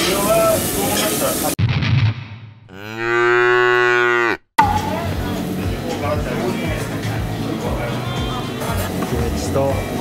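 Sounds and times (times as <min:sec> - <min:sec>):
cow mooing: 0:02.7 - 0:04.5.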